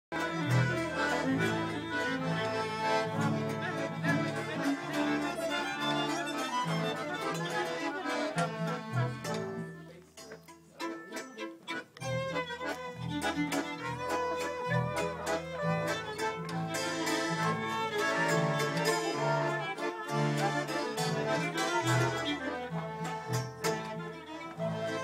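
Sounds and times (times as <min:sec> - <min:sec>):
accordion: 0:00.0 - 0:25.0
double bass: 0:00.1 - 0:10.8, 0:11.8 - 0:25.0
fiddles: 0:00.1 - 0:25.0
hammered dulcimer: 0:00.1 - 0:25.0.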